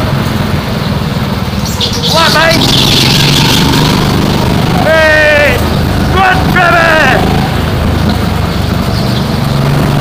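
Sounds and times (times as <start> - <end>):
go-kart engine running: 0.0 - 10.0
other go-kart engines: 0.0 - 10.0.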